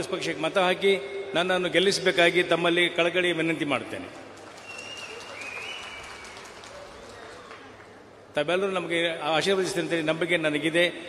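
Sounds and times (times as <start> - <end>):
crowd applauding: 4.1 - 8.2.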